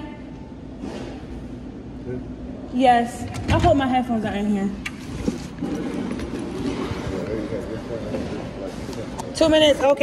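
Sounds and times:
store background noise: 0.0 - 10.0.

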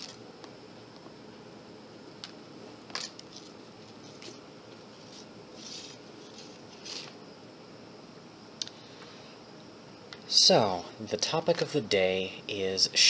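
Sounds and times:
steady background hiss: 0.0 - 13.0
shoelaces clicking and rustling: 2.2 - 7.2.

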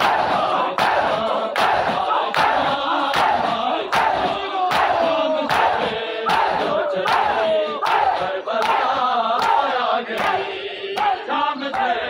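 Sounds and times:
crowd slapping chests: 0.0 - 12.0
men chanting together: 0.0 - 12.0.

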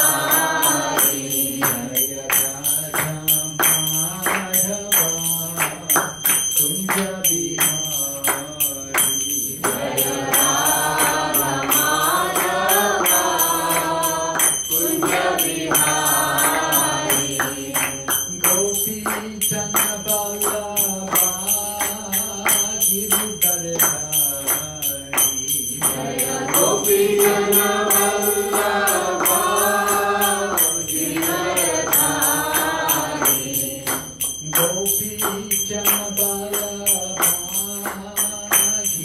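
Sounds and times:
group chanting: 0.0 - 3.0, 8.9 - 19.4, 25.6 - 36.8
hand cymbals beating: 0.0 - 39.0.

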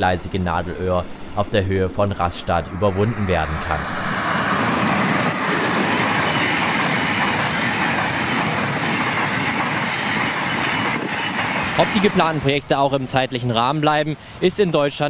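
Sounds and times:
high-speed train passing: 0.0 - 15.0.

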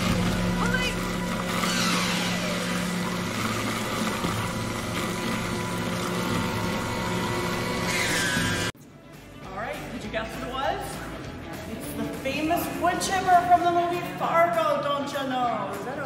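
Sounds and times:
wood chipper engine running: 0.0 - 8.7.

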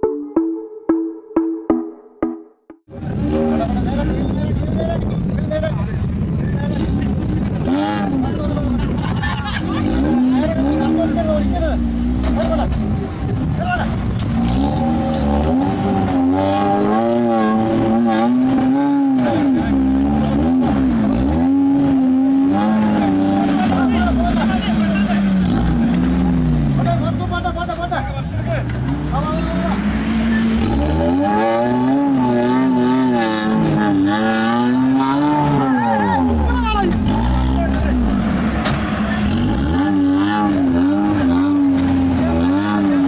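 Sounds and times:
car engine revving: 2.9 - 43.0.

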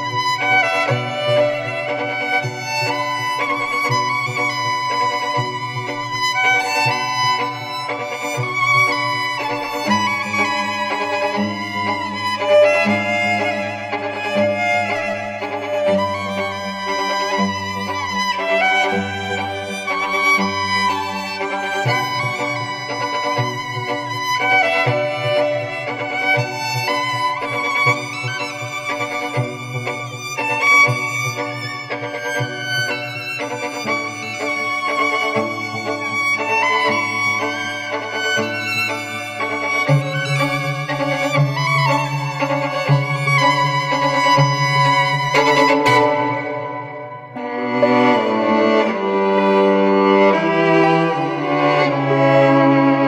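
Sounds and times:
bowed violin chords: 0.0 - 53.0.

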